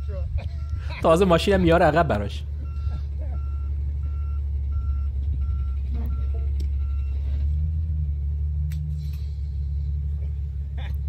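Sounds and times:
truck back-up alarm beeping: 0.0 - 8.1
truck engine running: 0.0 - 11.0.

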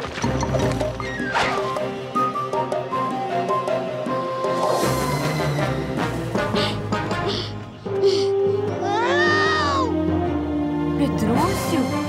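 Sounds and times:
orchestral cartoon music: 0.0 - 12.0
high-pitched cartoon creature cry: 8.8 - 10.0.

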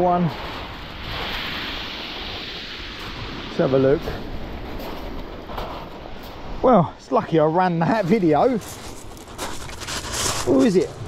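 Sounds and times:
surf on shingle beach: 0.0 - 11.0.

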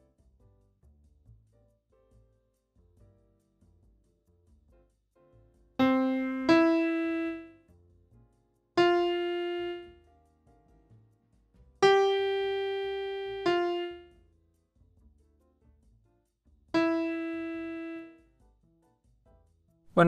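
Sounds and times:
single piano notes: 5.8 - 7.5, 8.8 - 9.9, 11.8 - 14.0, 16.8 - 18.1.

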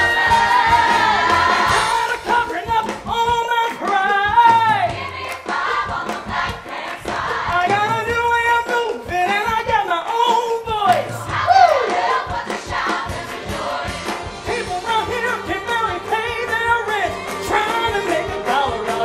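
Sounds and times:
several people singing: 0.0 - 3.0, 3.7 - 8.0, 11.0 - 19.0
band accompaniment: 0.0 - 19.0.

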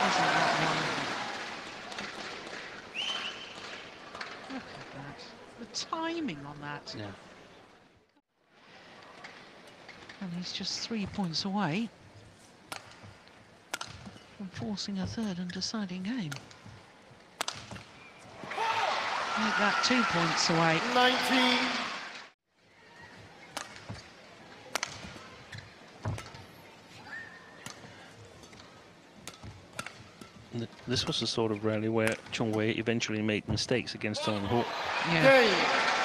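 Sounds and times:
faint arena background: 0.0 - 36.0
shoe squeak: 3.0 - 3.6
racket striking shuttlecock: 12.7 - 14.3, 17.4 - 18.0, 23.5 - 24.1, 24.7 - 26.5, 27.6 - 30.4.

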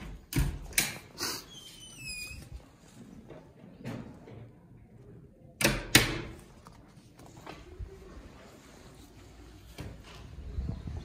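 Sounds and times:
door squeak: 1.4 - 2.6.

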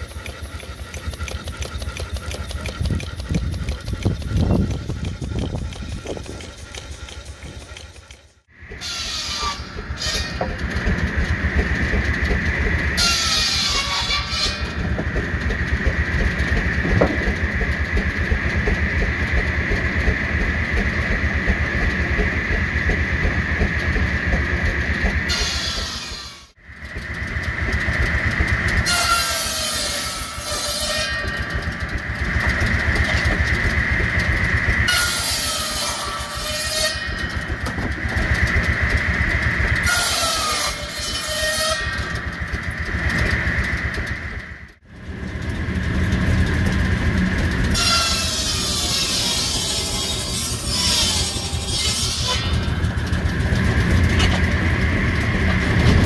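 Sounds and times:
saw blade cutting wood: 0.0 - 44.1, 47.4 - 54.7
circular saw blade whine: 0.0 - 56.0
steam engine beat: 0.0 - 56.0.

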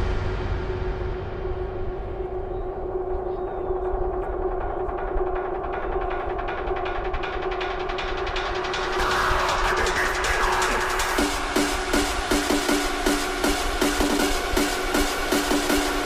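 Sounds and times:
fast ticking rhythm: 3.0 - 16.0.

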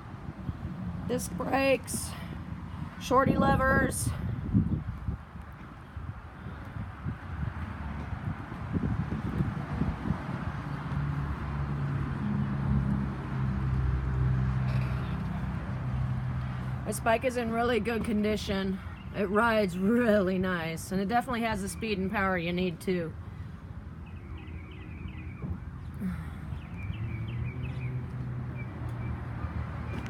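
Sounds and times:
birds chirping: 23.4 - 30.0.

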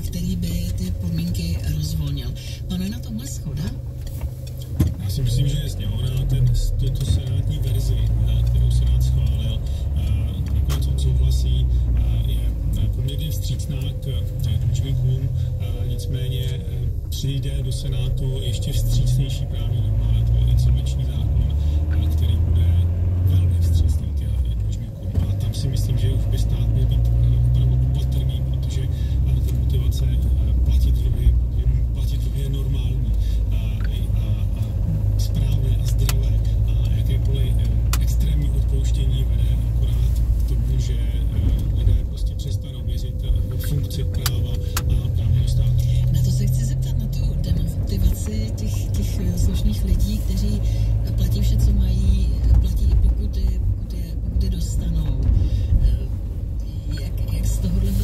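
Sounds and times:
car engine and tyre rumble: 0.0 - 58.0
car radio voice and music: 0.0 - 58.0.

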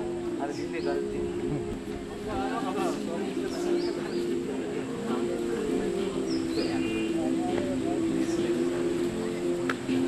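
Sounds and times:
small birds chirping: 2.9 - 10.0.

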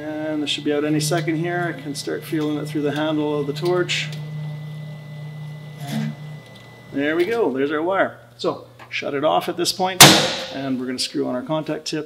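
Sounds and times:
welder wire feed motor hum: 0.0 - 8.8.

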